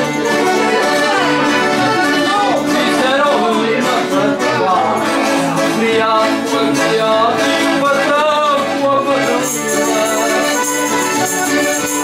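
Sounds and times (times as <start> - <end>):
accordions playing: 0.0 - 12.0
strummed guitar: 0.0 - 12.0
man singing: 2.0 - 12.0.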